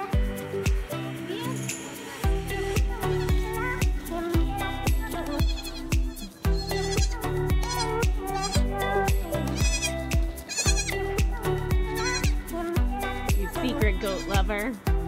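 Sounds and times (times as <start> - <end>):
background music with steady beat: 0.0 - 15.0
goat kids bleating: 3.0 - 3.4, 5.2 - 11.1, 12.0 - 12.4.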